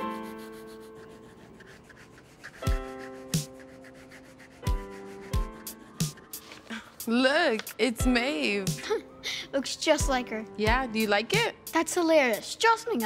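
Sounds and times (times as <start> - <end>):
soft piano music: 0.0 - 6.4
marker rubbing on paper: 0.0 - 7.7.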